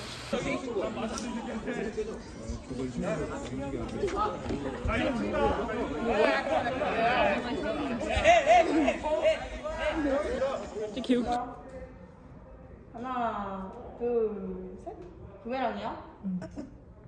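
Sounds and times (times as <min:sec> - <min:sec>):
people chattering: 0:00.0 - 0:17.0.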